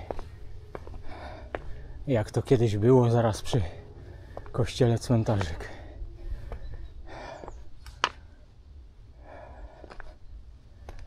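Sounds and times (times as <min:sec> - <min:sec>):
person breathing: 0:00.0 - 0:02.0, 0:03.6 - 0:04.6, 0:05.7 - 0:08.5, 0:09.1 - 0:11.0.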